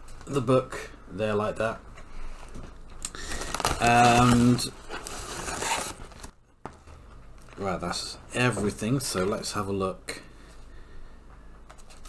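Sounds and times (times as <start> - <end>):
paper and packaging crinkling: 2.3 - 7.8
short crackles: 3.0 - 6.4.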